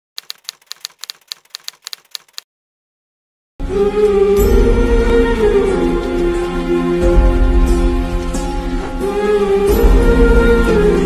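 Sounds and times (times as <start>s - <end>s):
typewriter key clicks: 0.2s - 2.4s.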